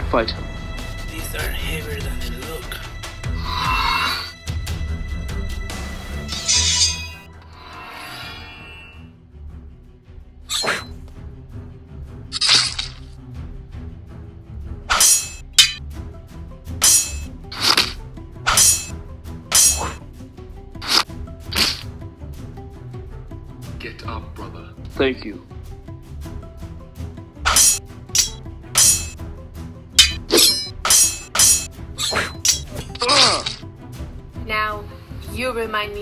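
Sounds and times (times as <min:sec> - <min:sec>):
background music: 0:00.0 - 0:36.0
swords clashing: 0:06.3 - 0:07.2, 0:10.5 - 0:10.9, 0:12.4 - 0:13.0, 0:14.9 - 0:15.8, 0:16.8 - 0:18.9, 0:19.5 - 0:20.0, 0:27.5 - 0:29.2, 0:30.0 - 0:33.6.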